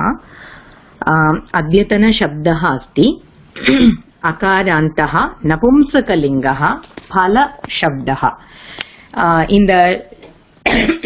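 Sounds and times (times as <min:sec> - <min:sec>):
person speaking: 0:01.0 - 0:10.4
person clearing throat: 0:03.6 - 0:04.1, 0:10.6 - 0:11.0.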